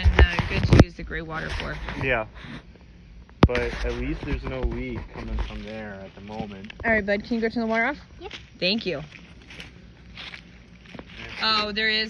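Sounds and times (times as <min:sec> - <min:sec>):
footsteps on grass and dry leaves: 0:05.0 - 0:12.0.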